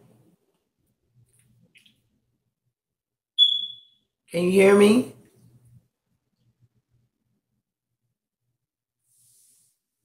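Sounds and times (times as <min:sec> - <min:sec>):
high electronic beep: 0:03.4 - 0:04.0.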